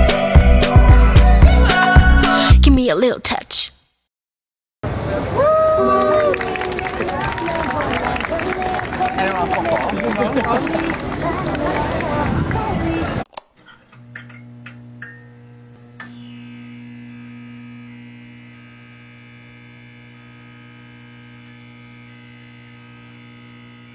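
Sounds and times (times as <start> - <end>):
crowd chatter: 4.9 - 13.2
electrical hum: 13.9 - 23.9.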